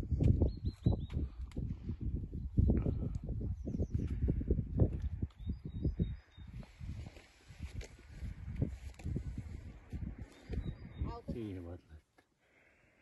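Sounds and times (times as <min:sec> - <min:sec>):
wind buffeting microphone: 0:00.0 - 0:11.5.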